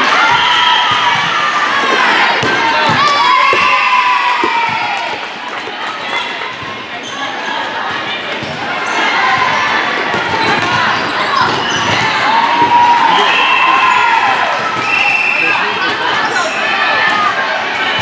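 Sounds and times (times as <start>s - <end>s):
voices echoing in gym: 0.0s - 18.0s
volleyball bouncing on floor: 0.9s - 3.8s, 10.1s - 12.8s.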